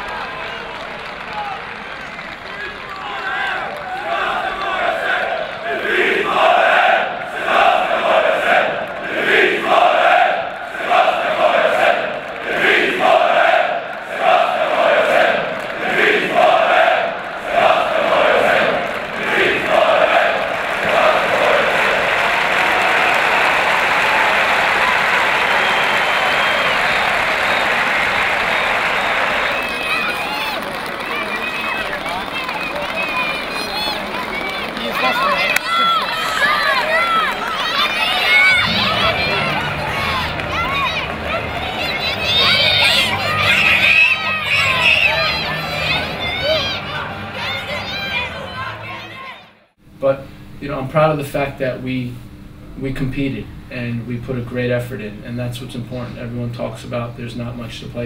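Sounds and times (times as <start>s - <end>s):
crowd cheering: 0.0s - 49.8s
crowd chanting rhythmically: 3.4s - 30.0s, 36.4s - 49.8s.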